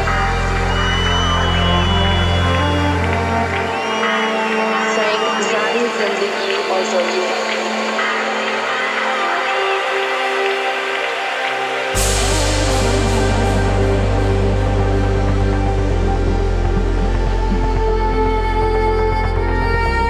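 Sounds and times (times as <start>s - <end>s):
deep bass line: 0.0s - 3.9s, 12.0s - 20.0s
live house music band: 0.0s - 20.0s.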